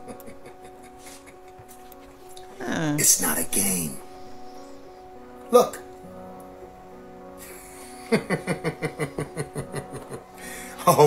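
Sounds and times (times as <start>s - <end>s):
person laughing: 0.0s - 1.8s, 7.4s - 10.3s.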